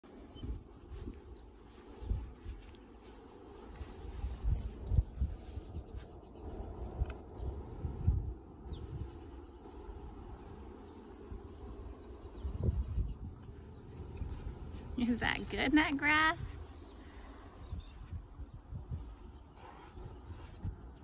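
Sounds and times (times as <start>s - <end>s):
horse tearing and chewing grass: 6.6s - 7.3s.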